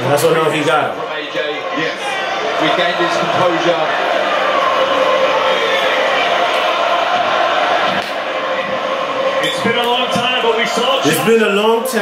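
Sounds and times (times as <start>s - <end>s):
boxing crowd roaring: 0.0s - 12.0s
commentator's voice: 9.4s - 12.0s.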